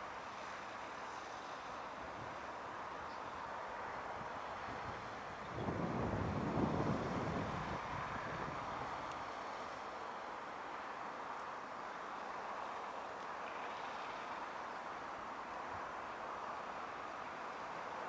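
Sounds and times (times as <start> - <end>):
distant outdoor hiss: 0.0 - 5.3, 8.6 - 18.0
wind buffeting microphone: 4.1 - 9.1.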